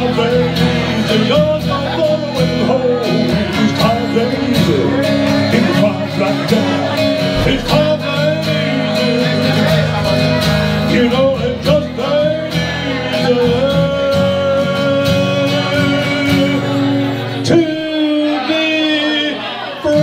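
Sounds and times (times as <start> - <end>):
acoustic guitar strumming: 0.0 - 20.0
person singing: 0.0 - 20.0.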